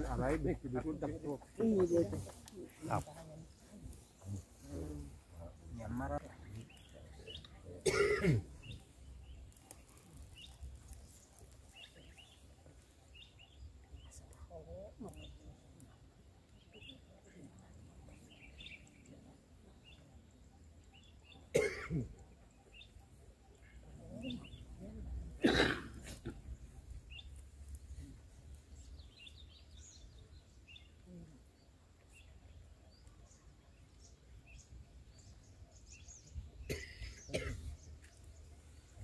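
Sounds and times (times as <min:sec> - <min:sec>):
person coughing: 0:07.8 - 0:08.4, 0:21.5 - 0:22.1, 0:25.4 - 0:26.4, 0:36.7 - 0:37.7.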